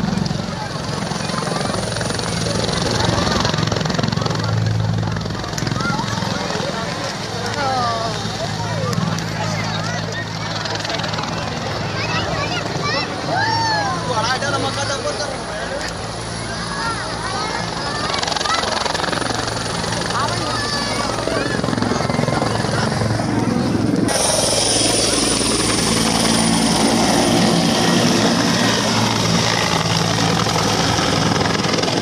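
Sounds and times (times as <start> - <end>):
crowd chatter and shouts: 0.0 - 32.0
helicopter drone: 0.0 - 32.0.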